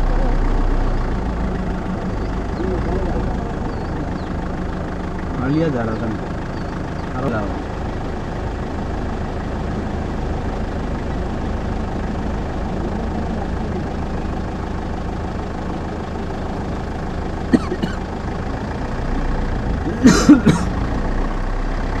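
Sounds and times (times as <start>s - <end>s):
vehicle engine idling: 0.0s - 22.0s.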